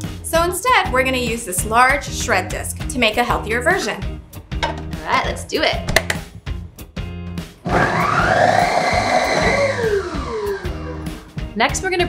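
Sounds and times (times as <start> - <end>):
background music: 0.0 - 12.0
food processor motor whirring: 7.6 - 11.2.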